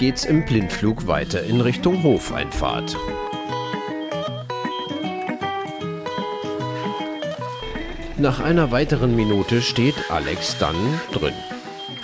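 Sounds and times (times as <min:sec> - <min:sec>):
melody of short notes: 0:01.6 - 0:12.0.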